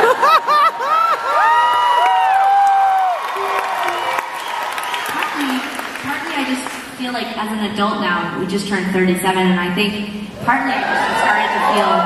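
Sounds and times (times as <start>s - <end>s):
audience high-pitched whoops: 0.1s - 5.6s, 10.7s - 12.0s.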